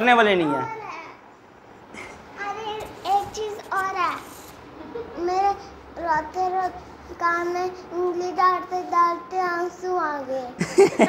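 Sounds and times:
girl singing: 2.4s - 4.2s, 5.2s - 10.6s.

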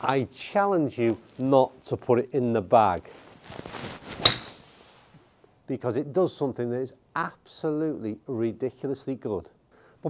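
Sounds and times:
golf club swing whoosh: 4.1s - 4.7s
golf club striking ball: 4.2s - 4.6s.

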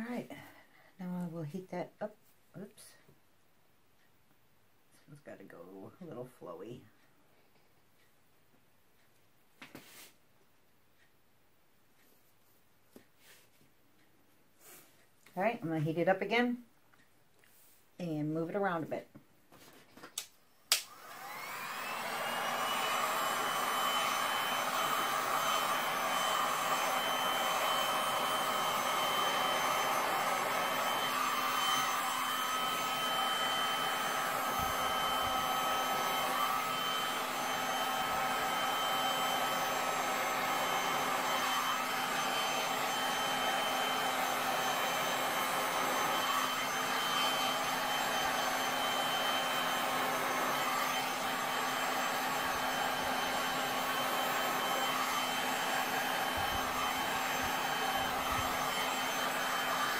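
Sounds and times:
heat gun fan whining: 20.7s - 59.9s.

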